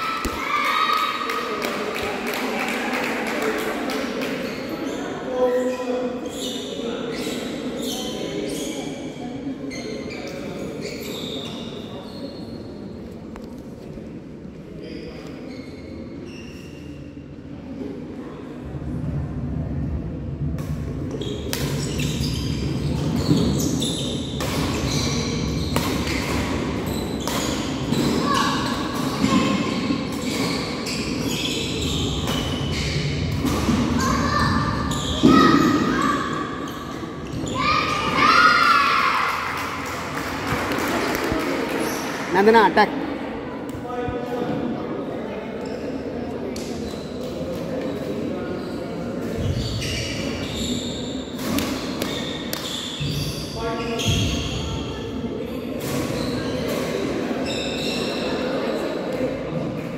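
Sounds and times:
voices in echoing hall: 0:00.0 - 0:59.9.

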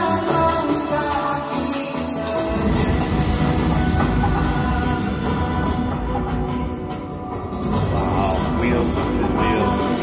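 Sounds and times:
cinematic music with deep rumble: 0:02.5 - 0:10.0.

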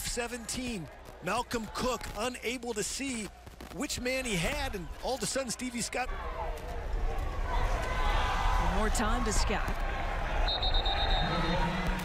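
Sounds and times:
stadium crowd noise: 0:00.0 - 0:12.0
referee's whistle: 0:10.4 - 0:11.9.

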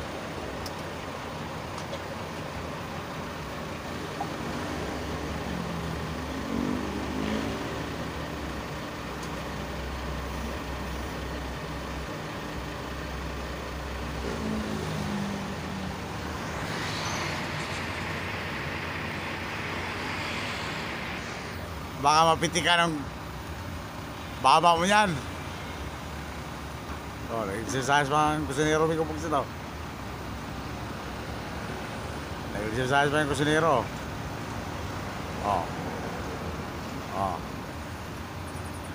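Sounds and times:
road traffic rumble: 0:00.0 - 0:38.9
vehicles passing: 0:00.0 - 0:38.9
broad hiss: 0:15.5 - 0:22.0.

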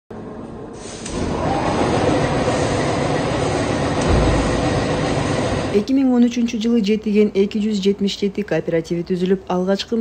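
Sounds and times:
machinery rattling rumble: 0:01.2 - 0:05.9.

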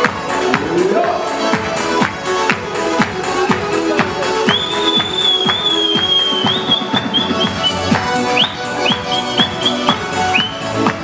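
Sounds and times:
dance music with drum beat: 0:00.0 - 0:11.0
shrill high whistle: 0:04.5 - 0:10.6.

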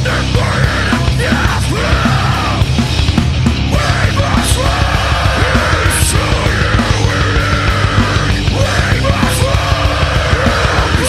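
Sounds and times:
harsh shouted vocals: 0:00.0 - 0:11.0
heavy metal band playing: 0:00.0 - 0:11.0.

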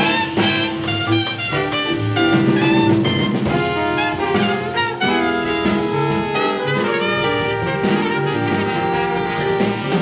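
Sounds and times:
horns playing in harmony: 0:00.0 - 0:10.0
jazz band playing: 0:00.0 - 0:10.0.

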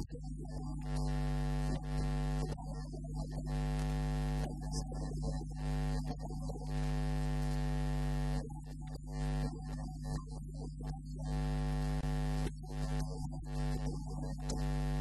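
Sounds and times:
electrical mains hum: 0:00.0 - 0:15.0.

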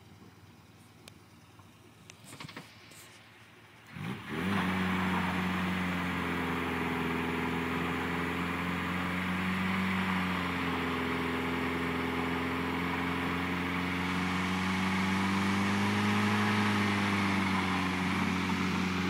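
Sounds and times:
car engine revving hard: 0:03.9 - 0:19.0.

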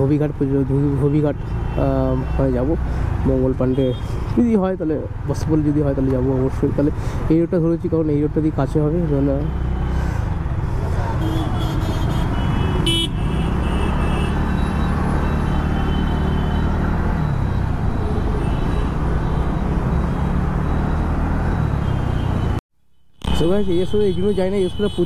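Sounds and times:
city traffic noise: 0:00.0 - 0:25.0
vehicle horns honking: 0:11.2 - 0:16.9, 0:23.2 - 0:25.0.

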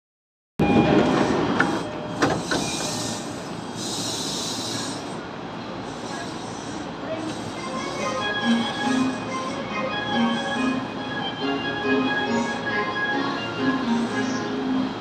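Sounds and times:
train wheels rolling on rails: 0:00.6 - 0:15.0
train hissing: 0:01.0 - 0:15.0.

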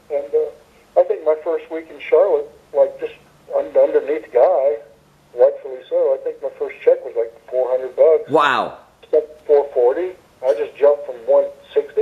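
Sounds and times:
person talking over telephone: 0:07.6 - 0:12.0.

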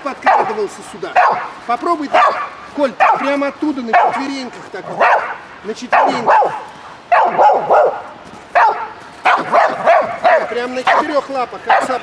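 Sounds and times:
dog barking: 0:00.2 - 0:12.0.

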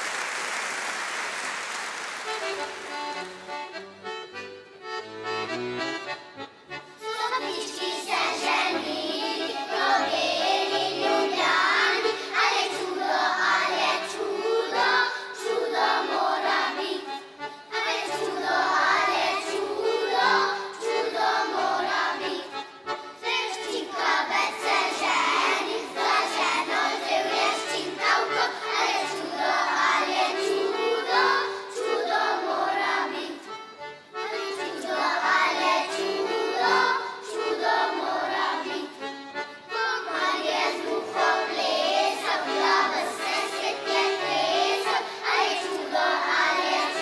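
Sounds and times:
applause: 0:00.0 - 0:03.5
children's choir singing: 0:00.0 - 0:05.6, 0:07.0 - 0:47.0
small instrumental ensemble: 0:02.2 - 0:47.0.

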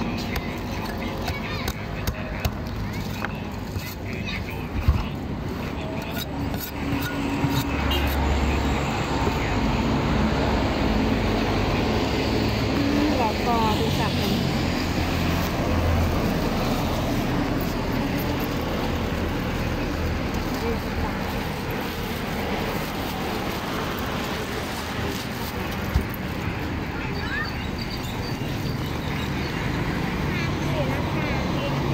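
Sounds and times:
people talking: 0:00.0 - 0:10.2, 0:10.9 - 0:14.8, 0:16.3 - 0:23.1, 0:23.8 - 0:28.8, 0:29.9 - 0:31.9
street traffic: 0:00.0 - 0:31.9.

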